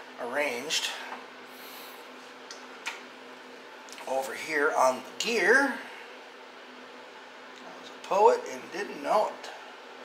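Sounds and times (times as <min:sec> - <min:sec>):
space heater hissing: 0:00.0 - 0:10.0.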